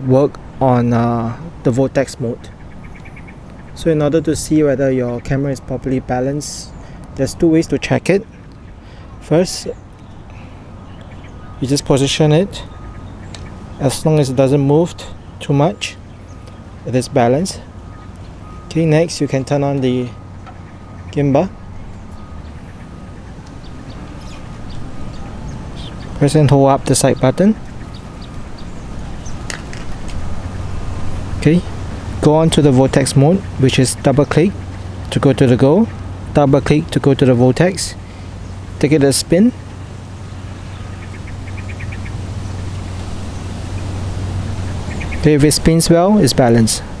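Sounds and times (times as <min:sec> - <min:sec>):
bird chirps: 0:02.4 - 0:46.9.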